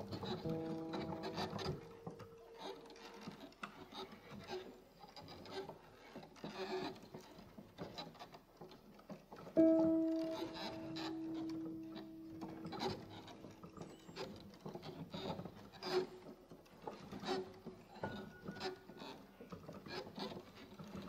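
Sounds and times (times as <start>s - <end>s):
piano note ringing: 0.0s - 3.0s, 9.6s - 14.4s.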